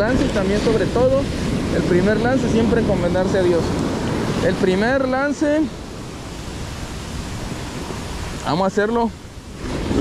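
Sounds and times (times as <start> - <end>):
ocean waves breaking on sand: 0.0 - 10.0.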